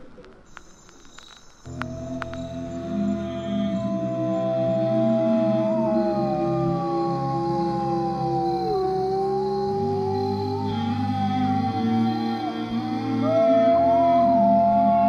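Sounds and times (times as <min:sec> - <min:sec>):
ambient music: 0:01.7 - 0:15.0
dogs howling: 0:01.7 - 0:15.0.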